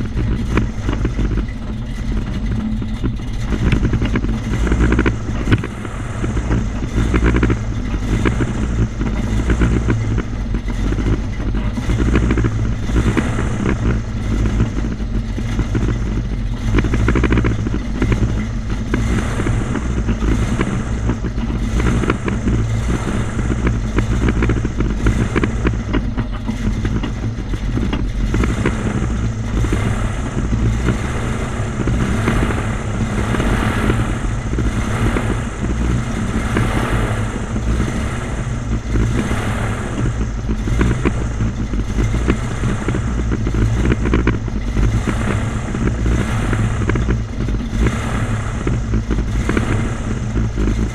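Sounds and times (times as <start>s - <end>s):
airboat engine and propeller: 0.0s - 50.9s.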